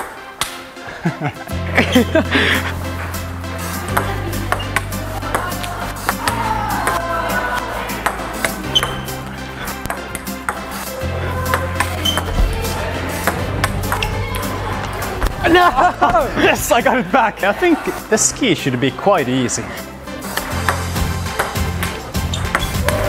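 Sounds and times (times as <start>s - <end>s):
background music with bass line: 0.0s - 23.0s.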